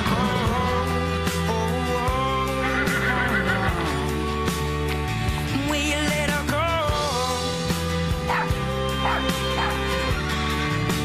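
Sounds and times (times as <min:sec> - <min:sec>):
held song chords: 0:00.0 - 0:11.0
puppy yipping: 0:08.3 - 0:09.8.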